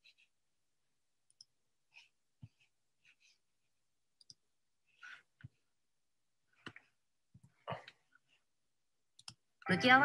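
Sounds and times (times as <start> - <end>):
computer mouse clicks: 4.2 - 4.4, 9.2 - 9.4.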